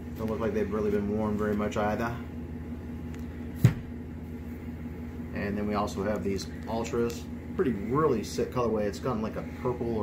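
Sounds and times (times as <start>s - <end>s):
low room hum: 0.0s - 10.0s
shoe thumping on wooden table: 3.6s - 3.9s.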